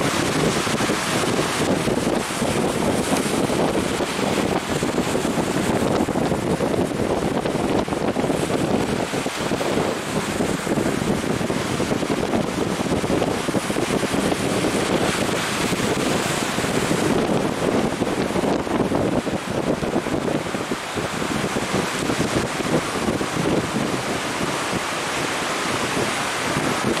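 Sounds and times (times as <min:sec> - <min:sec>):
surf breaking on shore: 0:00.0 - 0:27.0
wind buffeting microphone: 0:00.0 - 0:27.0.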